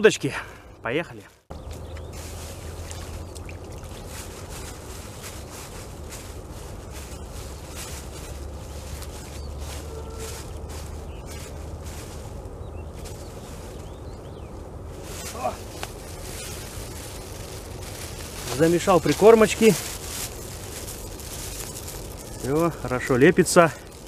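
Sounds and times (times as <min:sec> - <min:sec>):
low steady rumble: 0:01.4 - 0:24.0
hands kneading wet groundbait: 0:01.5 - 0:24.0
plastic bag crinkling: 0:01.5 - 0:24.0.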